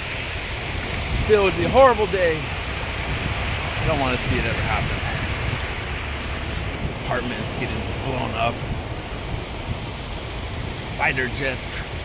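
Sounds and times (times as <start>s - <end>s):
small waves washing on sand: 0.0s - 12.0s
wind buffeting microphone: 0.0s - 12.0s.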